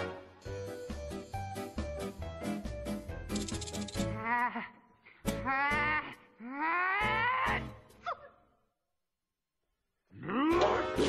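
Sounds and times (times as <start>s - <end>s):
music: 0.0s - 8.1s, 10.3s - 11.0s.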